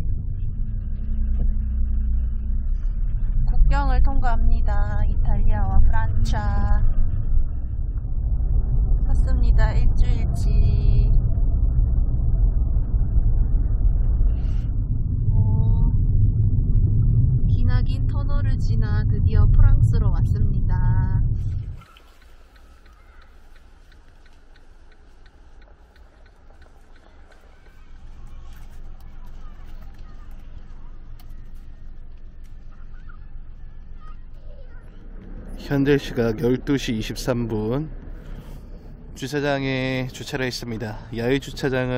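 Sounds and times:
car road and engine noise: 0:00.0 - 0:41.9.

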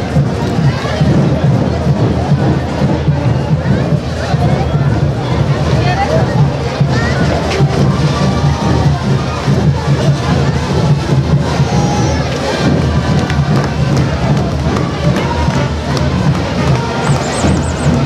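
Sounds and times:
crowd voices and chatter: 0:00.0 - 0:18.0
brass band playing: 0:13.8 - 0:18.0.

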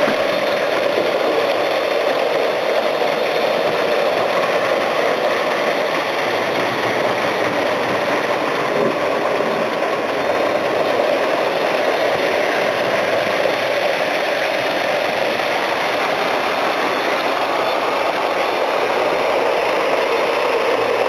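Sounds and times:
model train motor whirring: 0:00.0 - 0:21.0
wheels on metal rails: 0:00.0 - 0:21.0.

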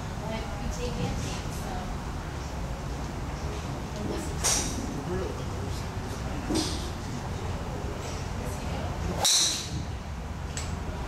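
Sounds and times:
golf club striking ball: 0:09.2 - 0:09.9.

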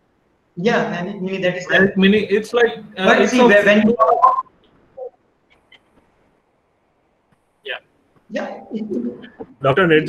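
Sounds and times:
man talking over video call: 0:01.7 - 0:04.0, 0:09.6 - 0:10.0.

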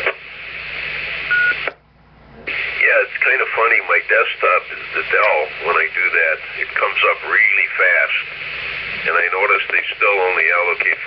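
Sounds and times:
radio carrier hiss: 0:00.0 - 0:01.8, 0:02.4 - 0:11.0
radio courtesy beep: 0:01.3 - 0:01.8.

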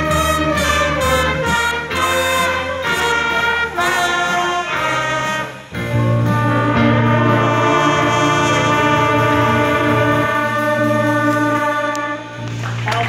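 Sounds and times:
band playing with trumpets: 0:00.0 - 0:13.0.

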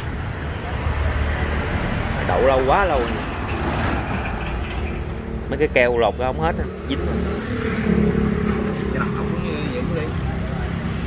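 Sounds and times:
road noise: 0:00.0 - 0:11.0
vehicle engines rumbling: 0:00.0 - 0:11.0.

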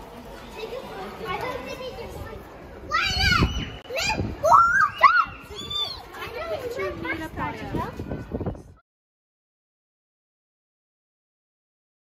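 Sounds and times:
children chattering: 0:00.0 - 0:08.8
child's high-pitched voice: 0:00.6 - 0:08.0.

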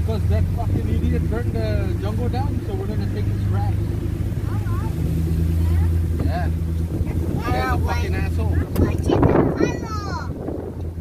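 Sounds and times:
car engine and tyres hum: 0:00.0 - 0:11.0.

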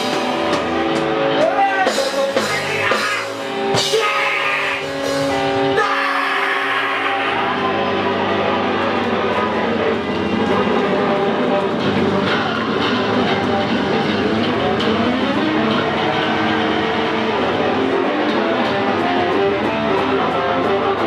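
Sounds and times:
drum kit with cymbal hits: 0:00.0 - 0:07.8, 0:08.8 - 0:21.0
distorted electric guitars: 0:00.0 - 0:21.0.

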